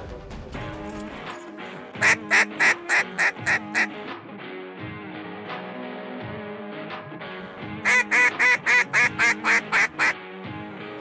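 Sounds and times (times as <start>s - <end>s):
background music with held tones: 0.0s - 11.0s
duck quacks: 2.0s - 4.0s, 7.8s - 10.2s.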